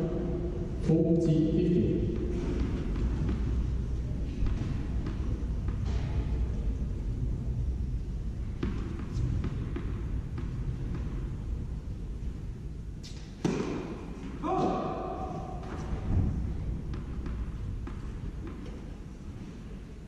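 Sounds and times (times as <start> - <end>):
low hum of indoor hall: 0.0 - 20.0
tennis ball bouncing on court: 2.1 - 6.1, 8.4 - 11.4, 13.0 - 18.9.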